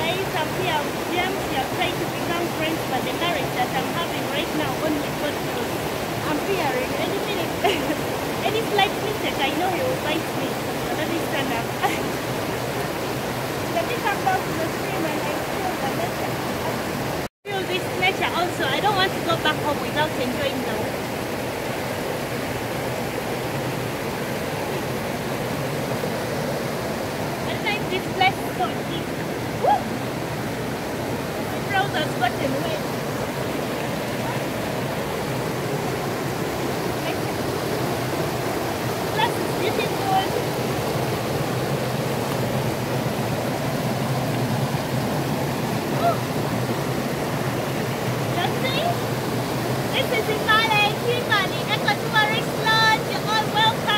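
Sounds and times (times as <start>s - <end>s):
stream rushing over stones: 0.0s - 53.9s.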